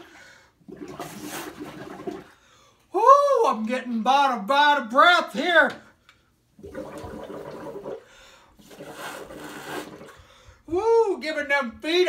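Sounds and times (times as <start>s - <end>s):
air bubbling through straws in water: 0.6s - 2.4s, 6.6s - 10.2s.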